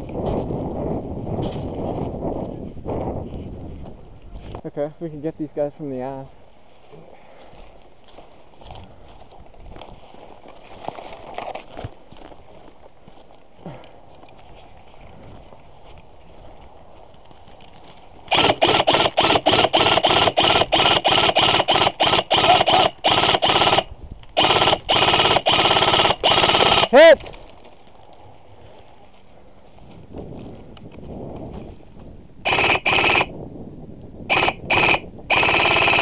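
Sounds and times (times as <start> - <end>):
airsoft rifle firing: 18.3 - 27.2, 32.5 - 33.3, 34.3 - 36.0.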